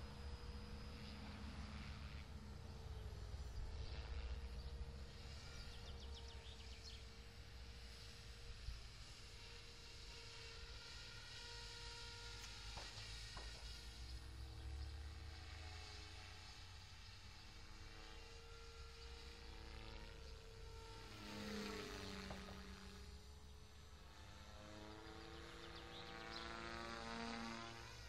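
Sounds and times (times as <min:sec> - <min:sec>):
model helicopter motor whine: 0:00.0 - 0:28.0.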